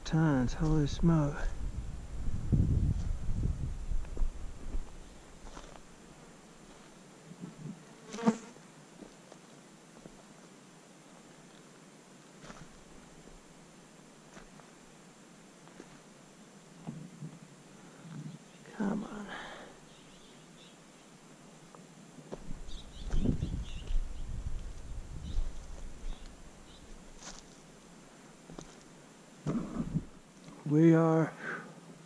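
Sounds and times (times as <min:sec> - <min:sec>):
insect buzzing: 0:03.8 - 0:08.6, 0:22.5 - 0:30.3
footsteps on stony ground: 0:03.9 - 0:06.0, 0:06.6 - 0:07.8, 0:12.4 - 0:13.0, 0:14.3 - 0:14.7, 0:15.6 - 0:16.1, 0:21.7 - 0:27.7, 0:28.5 - 0:30.2.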